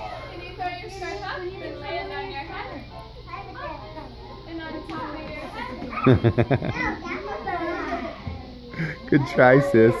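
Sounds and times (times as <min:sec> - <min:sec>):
children chattering and calling out: 0:00.0 - 0:10.0.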